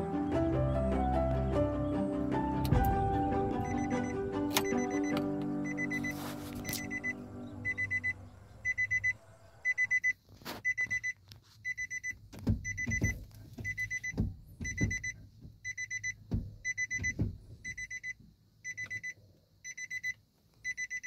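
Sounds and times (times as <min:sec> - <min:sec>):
dashboard warning chime beeps: 0:03.6 - 0:21.0.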